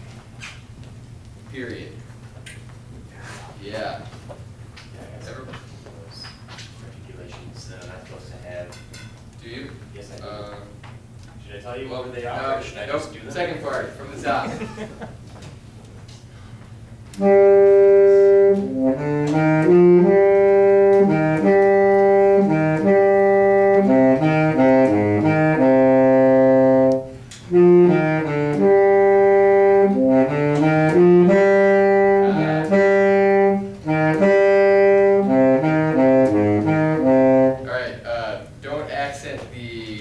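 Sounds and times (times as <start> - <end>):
wind ensemble playing sustained notes: 17.2 - 37.7.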